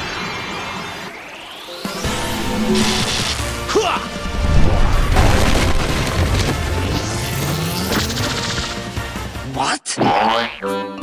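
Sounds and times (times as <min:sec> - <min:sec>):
background music: 0:01.4 - 0:11.0
rising whoosh: 0:01.8 - 0:03.6.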